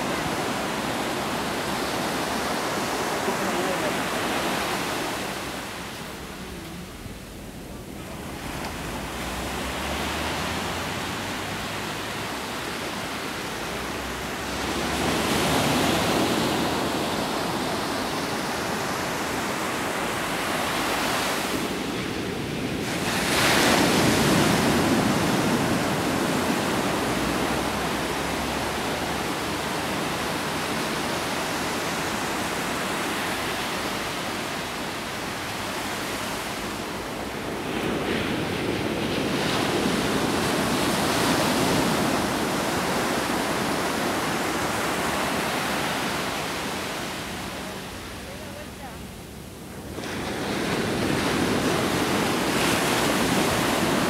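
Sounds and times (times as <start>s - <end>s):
ocean surf washing ashore: 0.0s - 54.0s
waves breaking: 0.0s - 54.0s.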